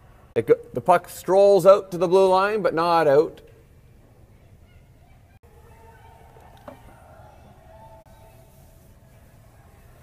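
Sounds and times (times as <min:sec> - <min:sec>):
faint distant voices: 0:04.1 - 0:10.0.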